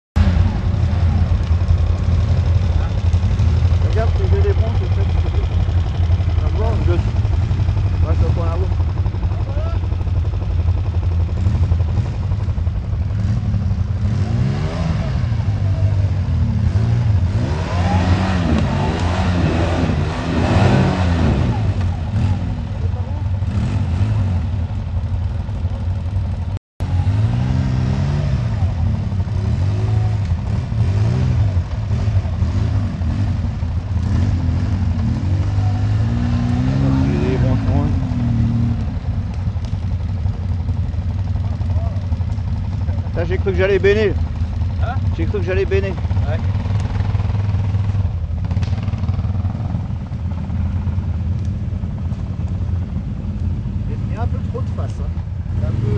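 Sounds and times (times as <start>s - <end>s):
quad bike engine revving: 0.2s - 55.9s.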